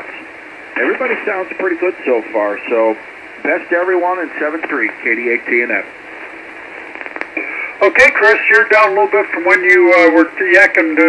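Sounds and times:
radio band noise hissing: 0:00.0 - 0:11.0
man's voice over radio: 0:00.8 - 0:05.9, 0:07.8 - 0:11.0.

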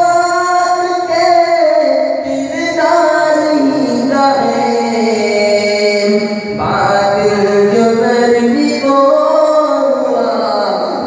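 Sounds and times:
man singing devotional song: 0:00.0 - 0:11.0.

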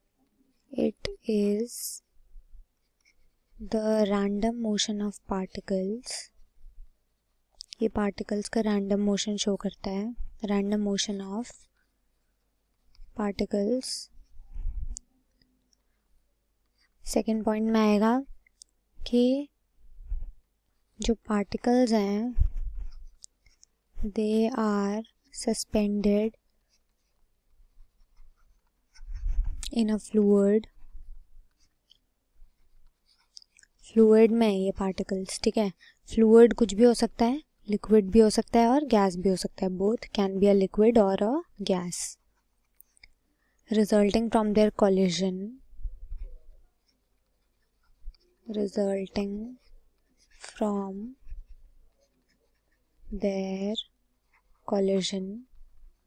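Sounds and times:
stylus scratching on tablet: 0:00.4 - 0:15.0, 0:16.7 - 0:56.0.

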